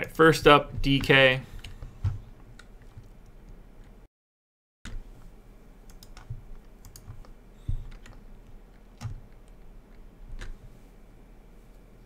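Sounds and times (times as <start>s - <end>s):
keyboard and mouse clicks: 5.9s - 10.7s.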